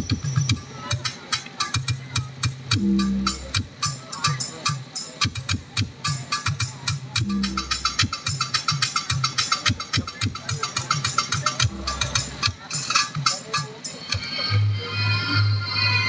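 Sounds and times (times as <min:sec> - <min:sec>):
fast percussion beat: 0:00.0 - 0:14.6
loud music over sound system: 0:00.0 - 0:16.0
punchy bass notes: 0:02.6 - 0:03.8, 0:07.1 - 0:08.2, 0:11.6 - 0:12.5
sustained melody: 0:02.8 - 0:03.6, 0:07.2 - 0:08.1, 0:11.6 - 0:12.4.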